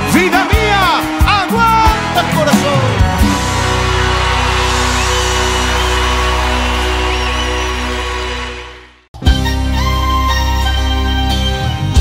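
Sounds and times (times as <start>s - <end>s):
live band playing cumbia: 0.0s - 12.0s.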